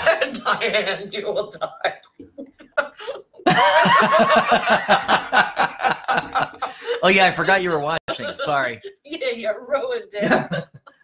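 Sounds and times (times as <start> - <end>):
woman laughing hard: 2.4 - 7.0.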